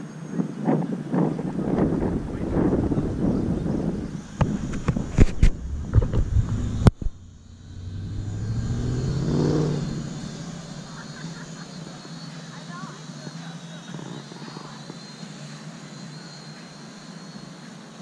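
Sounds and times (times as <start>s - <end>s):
busy outdoor noise: 0.0s - 18.0s
motor vehicle passing: 1.5s - 11.7s.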